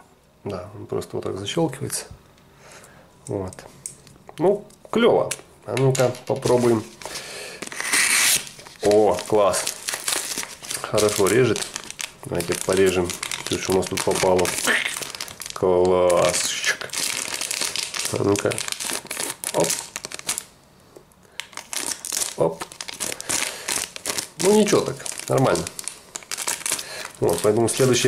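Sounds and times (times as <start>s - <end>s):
plastic bag crinkling: 5.7s - 20.5s, 21.3s - 28.0s.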